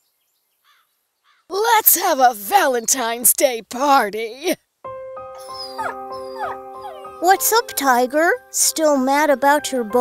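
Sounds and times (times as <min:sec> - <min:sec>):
soft background music: 0:04.8 - 0:10.0
cartoon dog whimpering: 0:05.4 - 0:07.4.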